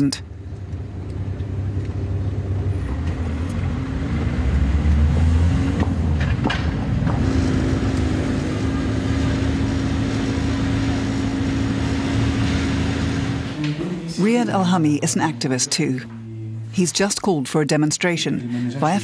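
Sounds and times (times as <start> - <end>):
vehicle engine running: 0.2 - 13.7.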